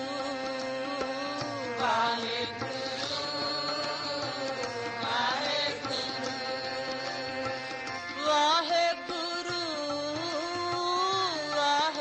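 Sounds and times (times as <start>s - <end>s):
melodic sung chant: 0.0s - 10.0s.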